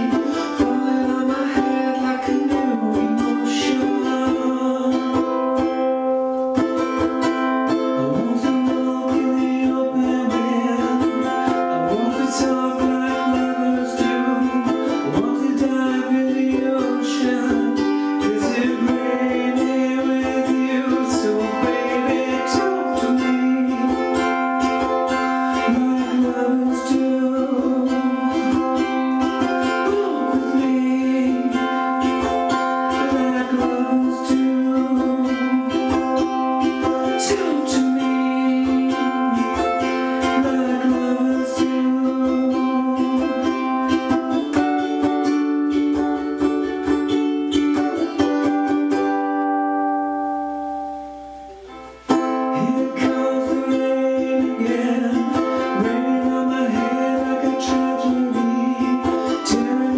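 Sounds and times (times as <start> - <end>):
person singing: 0.0 - 59.9
ukulele strummed in chords: 0.0 - 59.9.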